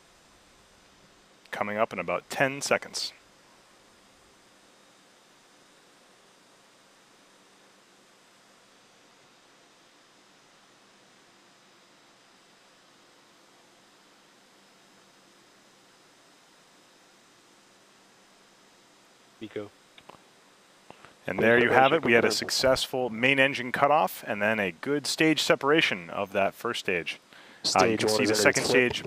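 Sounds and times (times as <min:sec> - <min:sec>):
faint steady hiss: 0:00.0 - 0:29.0.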